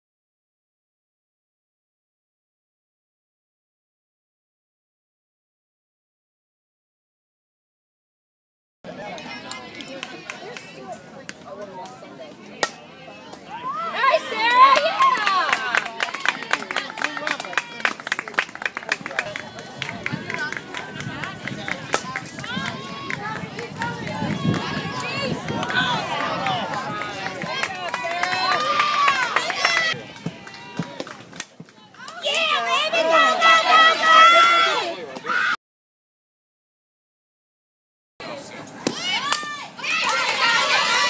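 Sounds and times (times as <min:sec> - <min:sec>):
faint spectator chatter: 0:08.9 - 0:35.5
bat hitting softball: 0:12.6 - 0:12.8, 0:38.8 - 0:40.3.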